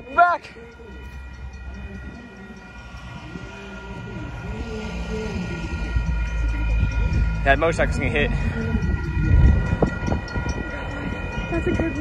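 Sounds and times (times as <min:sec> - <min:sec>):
train rumbling: 0:00.0 - 0:12.0.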